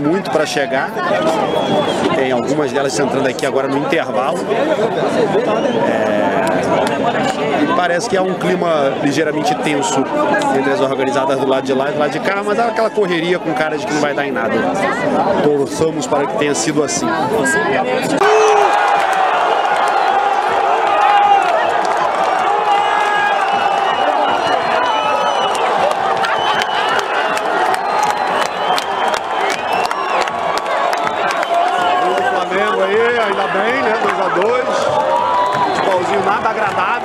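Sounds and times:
stadium crowd shouting and chanting: 0.0s - 37.0s.

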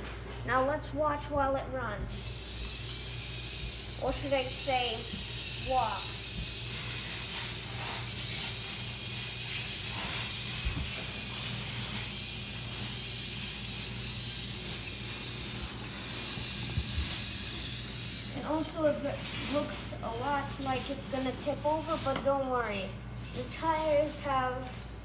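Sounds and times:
robot motor whirring: 2.1s - 19.8s.

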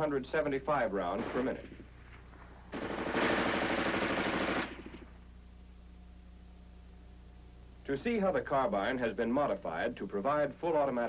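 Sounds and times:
automatic gunfire burst: 1.2s - 1.8s, 2.7s - 5.1s.

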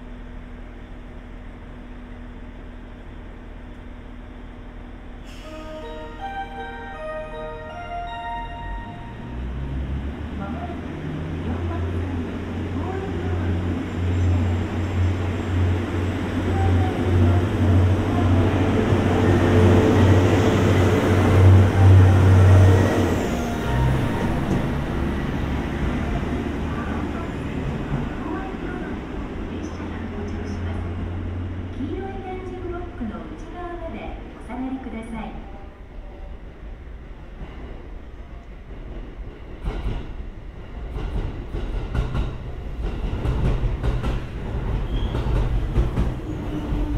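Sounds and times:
diesel railcar engine drone: 0.0s - 46.9s
train rumbling on rails: 0.0s - 46.9s.

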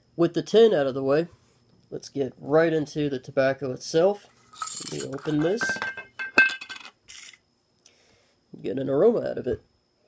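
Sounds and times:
lid clinking on glass jar: 4.6s - 6.9s.

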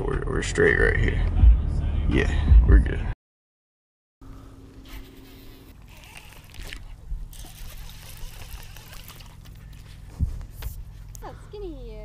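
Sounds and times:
water trickling and splashing: 5.7s - 11.2s
wind rumble on microphone: 10.1s - 10.9s.

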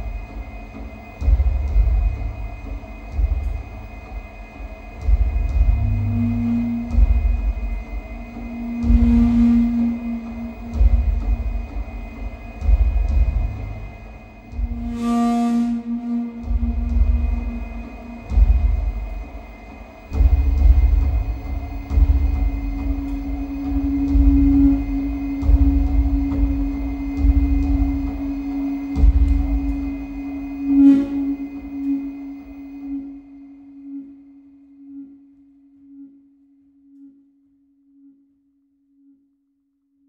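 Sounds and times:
deep rumbling swells: 0.0s - 35.2s
sustained low electronic tone: 5.1s - 39.4s.

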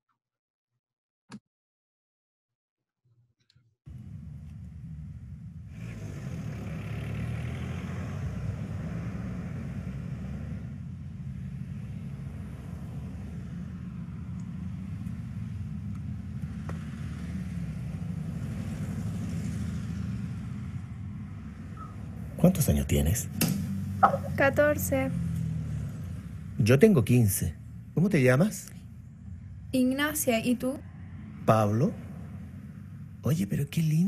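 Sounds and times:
city street traffic rumble: 3.9s - 34.0s.

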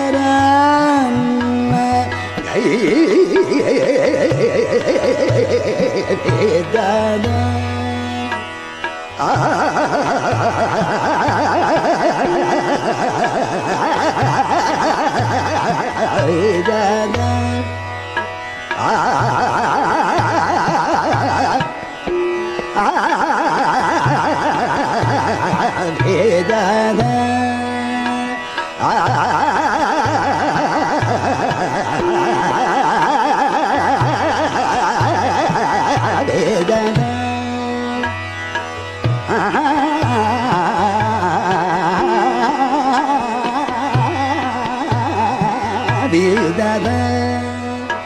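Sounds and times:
man singing fast vocal runs: 0.0s - 8.4s, 9.2s - 17.7s, 18.8s - 21.8s, 22.7s - 38.3s, 39.1s - 48.0s
held accompanying note: 31.9s - 48.0s.

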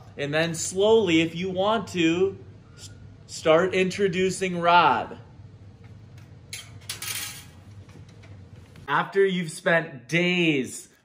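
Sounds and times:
low steady hum: 0.0s - 11.0s
metal clinks and scraping: 6.5s - 7.6s.

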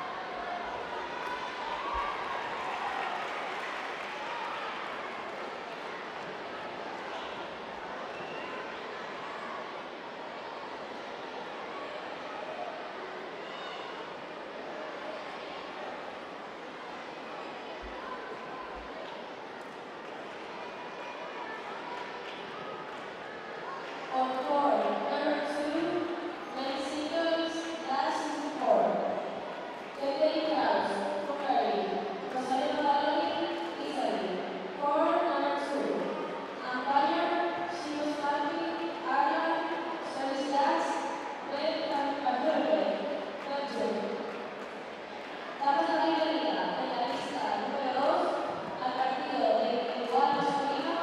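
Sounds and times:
murmur of large indoor hall: 0.0s - 51.0s.

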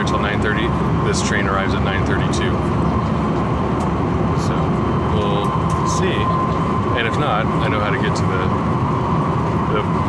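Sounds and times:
faint steady whine: 0.0s - 10.0s
train low rumble: 0.0s - 10.0s.

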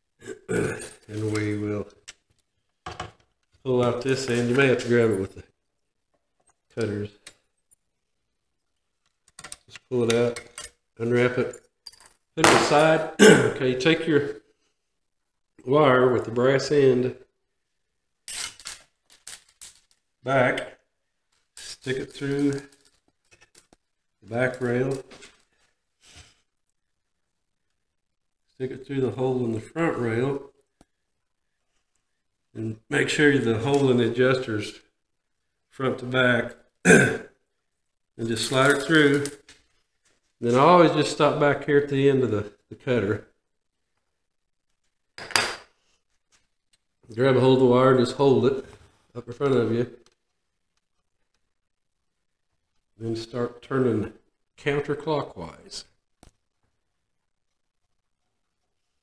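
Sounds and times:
wire scraping rustles: 18.2s - 20.1s.

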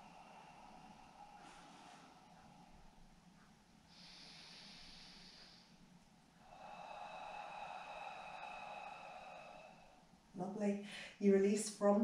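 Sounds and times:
person breathing: 0.0s - 11.2s.

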